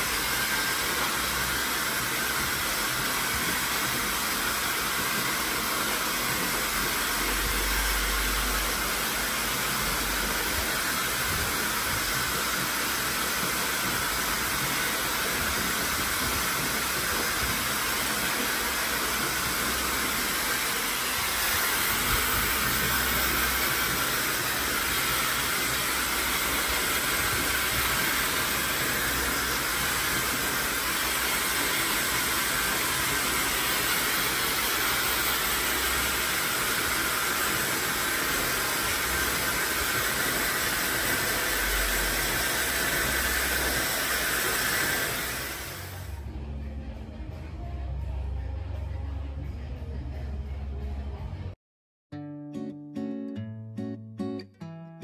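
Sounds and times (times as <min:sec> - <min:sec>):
hair dryer running: 0:00.0 - 0:46.3.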